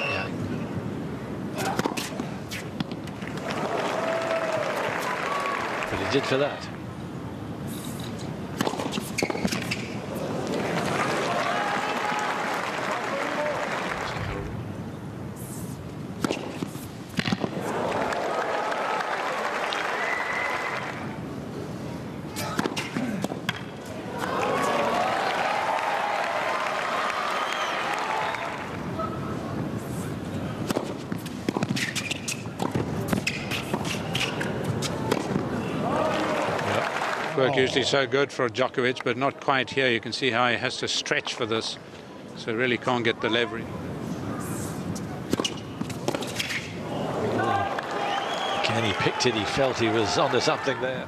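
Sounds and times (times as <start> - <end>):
crowd noise and voices: 19.7 - 51.0
tennis ball bouncing: 30.6 - 35.5, 45.3 - 46.6
tennis racket striking ball: 45.3 - 46.6.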